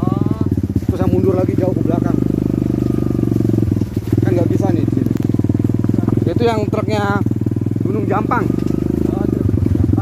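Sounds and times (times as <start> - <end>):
small motorcycle engine running: 0.0 - 10.0.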